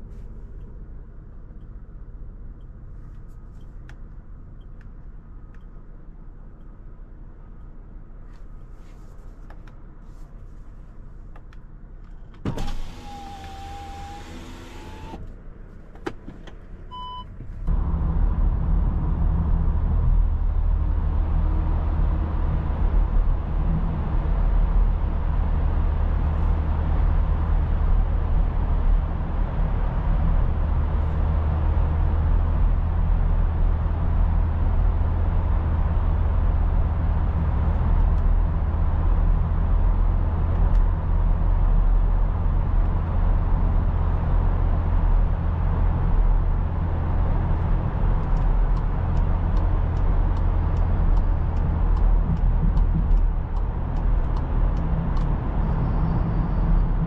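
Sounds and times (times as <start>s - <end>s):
car engine and tyre rumble: 0.0s - 57.0s
click: 4.6s - 5.8s, 37.7s - 38.3s, 48.2s - 55.8s
power window motor: 12.5s - 15.2s
short electronic beep: 16.9s - 17.3s.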